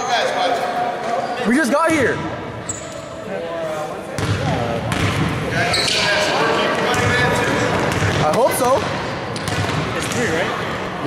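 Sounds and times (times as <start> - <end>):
background chatter: 0.0 - 11.0
basketball bouncing on wooden court: 4.2 - 5.3, 7.7 - 10.2.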